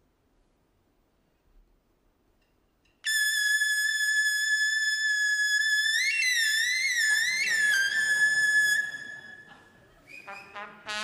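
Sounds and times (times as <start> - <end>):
trumpet high note: 10.3 - 11.0.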